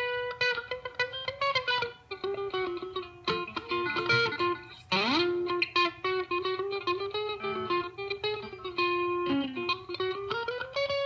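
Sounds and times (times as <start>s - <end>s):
solo guitar picking notes: 0.0s - 11.0s.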